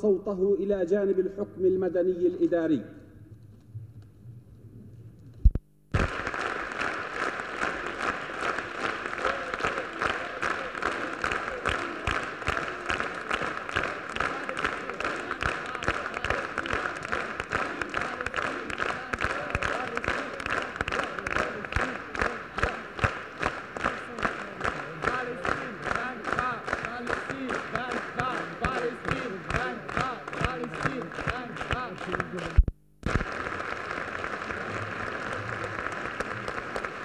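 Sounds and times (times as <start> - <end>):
audience applauding: 5.9 - 37.0.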